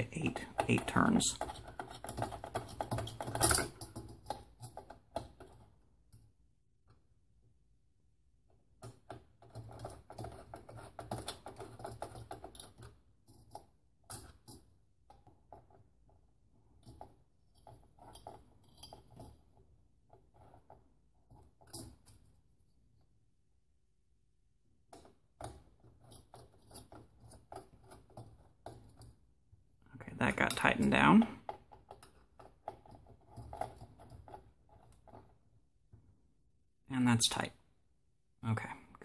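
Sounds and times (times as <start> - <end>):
screwdriver clicks and metallic rattles: 0.4 - 6.3.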